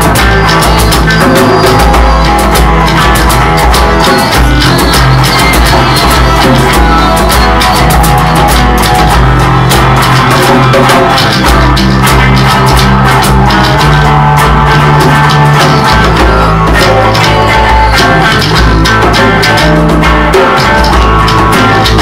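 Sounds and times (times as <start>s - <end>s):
rock band jamming: 0.0s - 22.0s.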